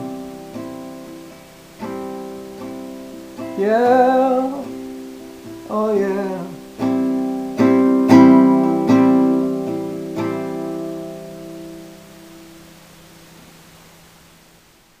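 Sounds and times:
acoustic guitar strumming chords: 0.0 - 13.2.

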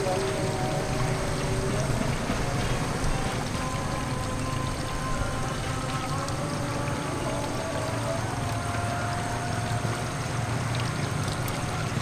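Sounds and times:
open-air hiss: 0.0 - 12.0.

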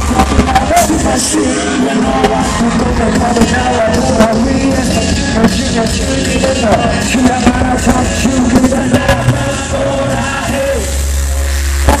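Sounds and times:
person rapping over music: 0.0 - 11.0
deep bass note: 0.0 - 12.0
live hip-hop music: 0.0 - 12.0.

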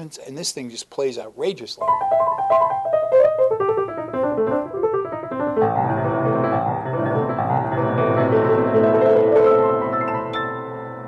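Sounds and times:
grand piano playing: 1.8 - 11.0.

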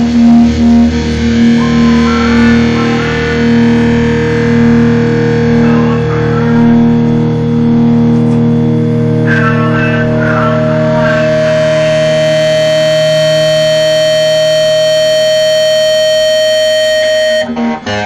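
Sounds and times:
distorted guitars ringing chord: 0.0 - 18.0
guitar string noise: 0.8 - 18.0.

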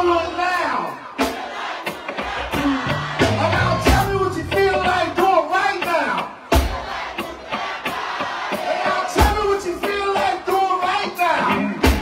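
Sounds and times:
live band music: 1.3 - 12.0
crowd voices: 1.8 - 6.4
sharp percussion hits: 2.6 - 5.7.

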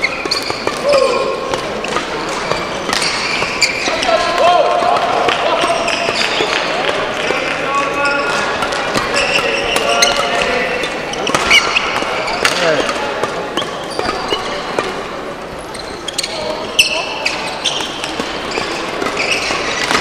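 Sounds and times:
racket striking shuttlecock: 0.0 - 7.0, 11.2 - 15.1, 17.7 - 20.0
shoes squeaking on court floor: 0.0 - 20.0.

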